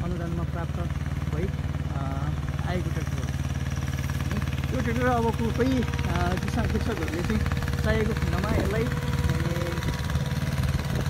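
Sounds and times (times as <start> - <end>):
tractor diesel engine droning: 0.0 - 11.0.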